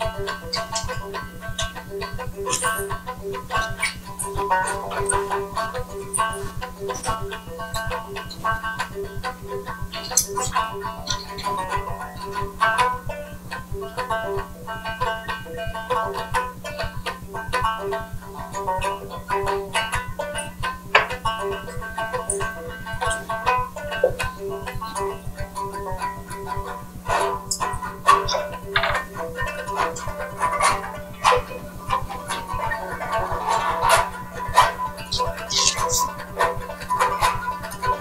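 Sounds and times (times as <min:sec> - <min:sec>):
banjo music over speakers: 0:00.0 - 0:38.0
low electrical hum: 0:00.0 - 0:38.0.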